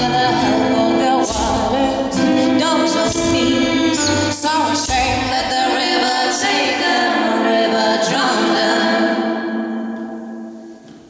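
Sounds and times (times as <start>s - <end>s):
women singing in harmony: 0.0s - 10.6s.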